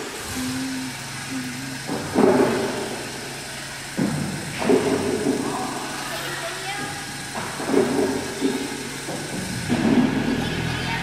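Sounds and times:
low steady hum: 0.0s - 7.2s
echoing thud: 1.8s - 3.3s.

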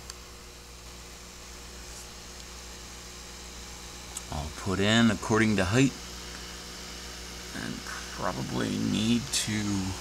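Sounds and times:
small click: 0.0s - 0.2s
electrical mains hum: 0.0s - 10.0s.

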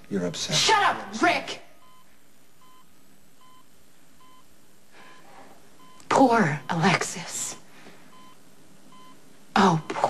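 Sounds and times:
patient monitor beeping: 1.8s - 10.0s.

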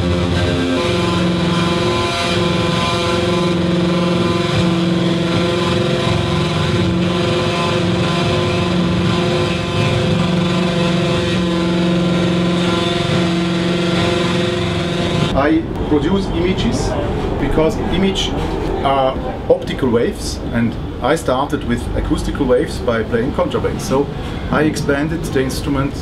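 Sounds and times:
electronic noise music drone: 0.0s - 26.0s.

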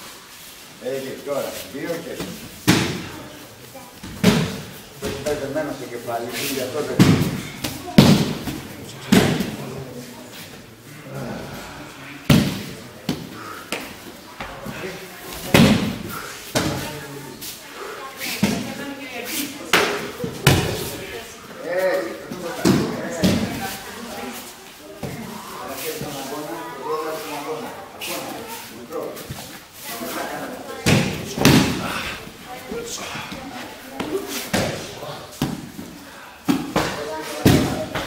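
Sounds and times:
voices echoing: 0.8s - 38.0s.

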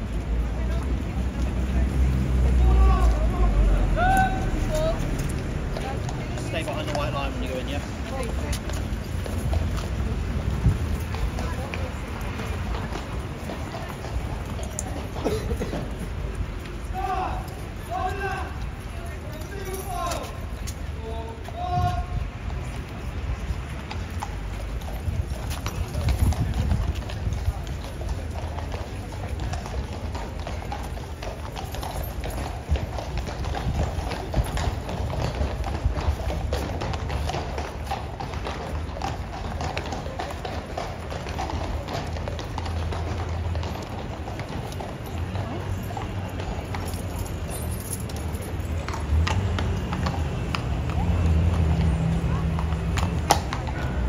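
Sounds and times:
horse hooves clip-clopping on paving: 0.0s - 54.0s.

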